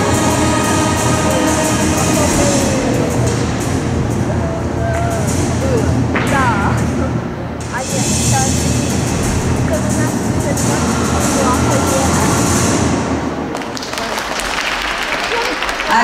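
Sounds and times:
voices calling out: 0:00.0 - 0:07.3
audience applauding: 0:13.5 - 0:16.0.

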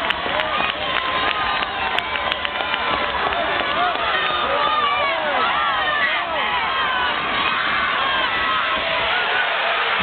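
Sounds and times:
stadium crowd shouting: 0:00.0 - 0:10.0.

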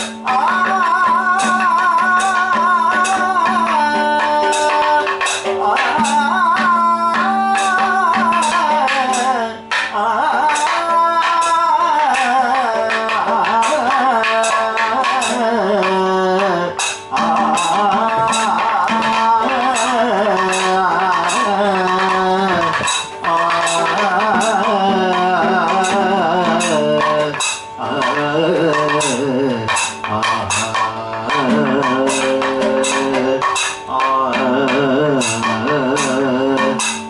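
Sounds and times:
man chanting: 0:00.0 - 0:37.0
man singing ornamented melody: 0:00.0 - 0:37.0
metal percussion disc struck: 0:00.0 - 0:37.0
shruti box drone: 0:00.0 - 0:37.0
small hand cymbals striking: 0:00.0 - 0:37.0.

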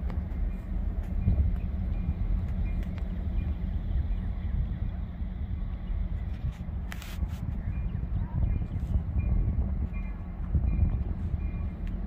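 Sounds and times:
distant diesel locomotives rumbling: 0:00.0 - 0:12.0.

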